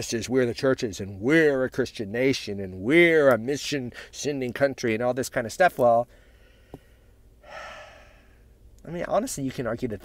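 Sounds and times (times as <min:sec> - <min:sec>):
man breathing: 0:03.9 - 0:04.2, 0:06.1 - 0:08.6.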